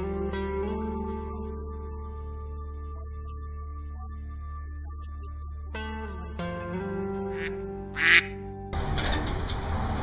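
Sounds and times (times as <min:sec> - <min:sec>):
guitar music: 0:00.0 - 0:08.8
duck-like quacks: 0:07.3 - 0:08.4.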